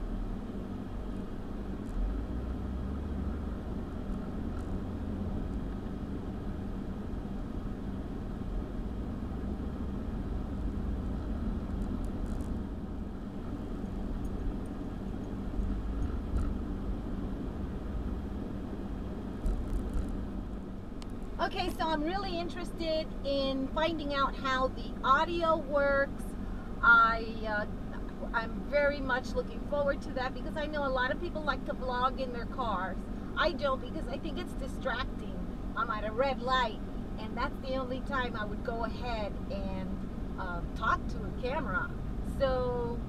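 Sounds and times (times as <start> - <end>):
air-conditioning blower: 0.0 - 43.0
engine and tyre rumble: 0.0 - 43.0.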